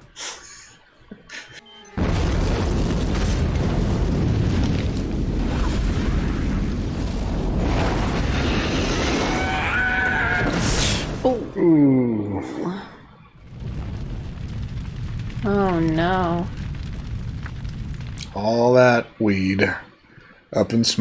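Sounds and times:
deep rumble: 0:02.0 - 0:09.8, 0:13.4 - 0:19.2
loud explosion blast: 0:02.0 - 0:11.6, 0:13.4 - 0:19.2.

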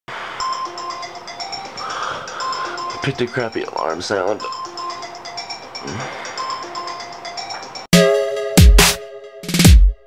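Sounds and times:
chiming alarm melody: 0:00.2 - 0:09.6.

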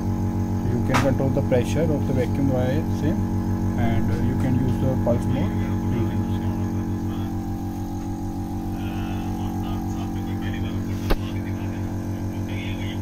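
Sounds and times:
vacuum pump pulsing hum: 0:00.0 - 0:13.0
sharp click: 0:00.9 - 0:01.2.

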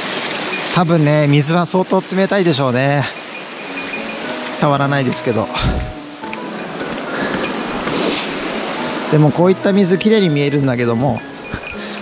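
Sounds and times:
stream rushing over its bed: 0:00.0 - 0:12.0.

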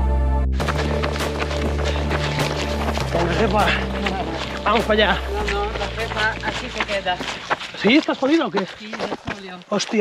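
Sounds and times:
music with low chords: 0:00.0 - 0:07.5
footfalls on a dirt trail: 0:00.6 - 0:10.0
voices talking: 0:00.8 - 0:10.0.

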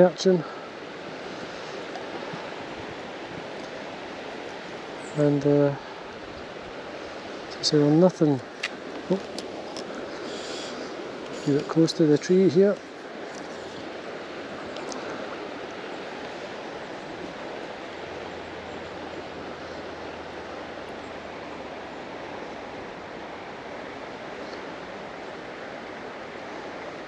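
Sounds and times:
river water rushing: 0:00.0 - 0:27.0.

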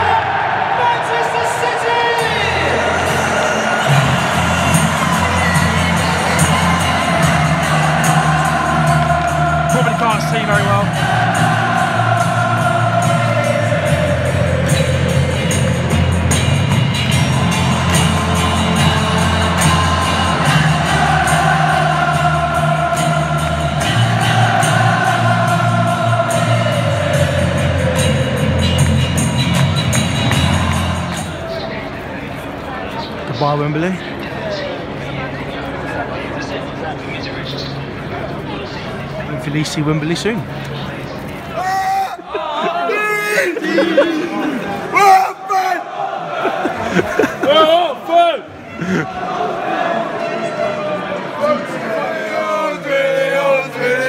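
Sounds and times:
large football crowd: 0:00.0 - 0:54.0
song over public-address system: 0:01.7 - 0:32.1.

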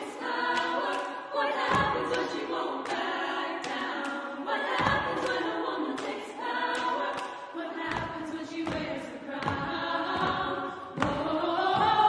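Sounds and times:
women's choir singing a cappella: 0:00.0 - 0:12.0.

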